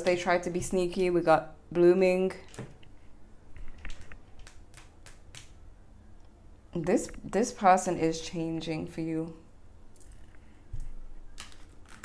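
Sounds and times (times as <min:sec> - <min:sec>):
cards clicking and tapping: 0:03.6 - 0:05.6, 0:10.8 - 0:12.0.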